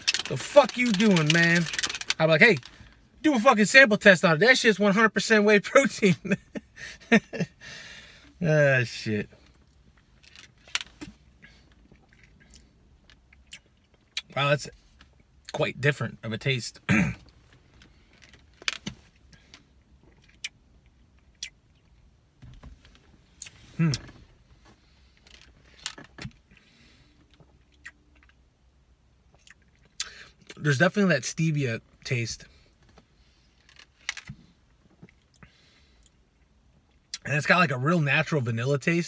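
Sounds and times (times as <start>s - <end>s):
man gulping and swallowing: 23.4s - 24.3s.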